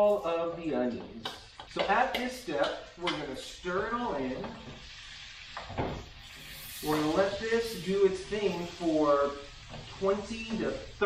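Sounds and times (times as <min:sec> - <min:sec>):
low sizzle: 0:00.0 - 0:11.0.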